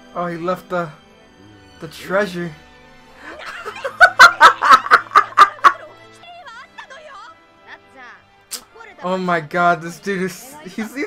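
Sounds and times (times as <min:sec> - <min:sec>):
man laughing hard: 0:03.5 - 0:05.9.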